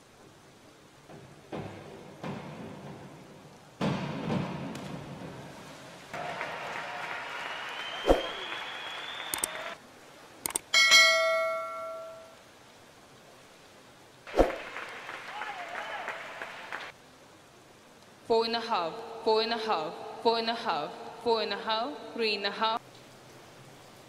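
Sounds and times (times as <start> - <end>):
spectators applauding: 6.1 - 9.8, 14.6 - 16.9
clicks: 9.3 - 9.6, 10.4 - 10.7
bright bell ding: 10.8 - 12.4.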